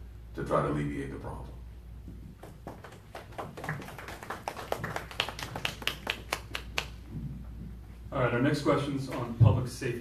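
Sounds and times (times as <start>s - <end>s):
audience applauding: 2.4s - 7.0s.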